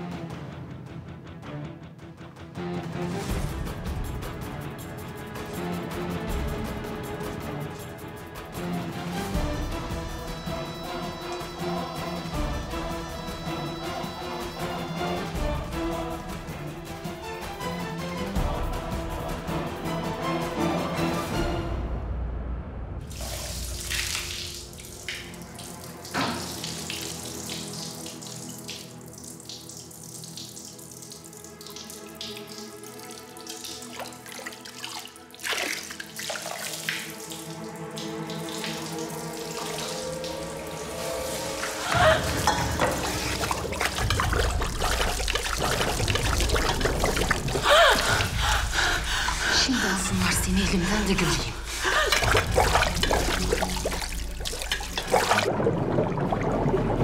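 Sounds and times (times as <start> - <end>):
soft background music: 0.0 - 57.0
water pouring and splashing: 23.0 - 57.0.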